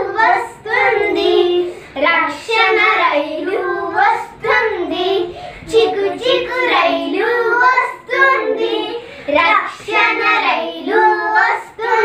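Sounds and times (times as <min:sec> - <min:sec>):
girls singing unaccompanied: 0:00.0 - 0:12.0.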